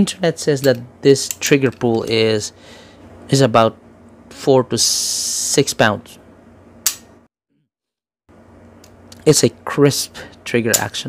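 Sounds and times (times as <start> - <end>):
pistol hammer click: 6.8 - 7.1.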